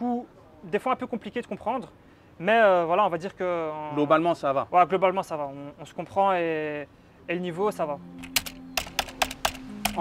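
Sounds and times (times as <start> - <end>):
faint low musical tone: 7.2 - 10.0
keyboard key clicks: 8.2 - 10.0.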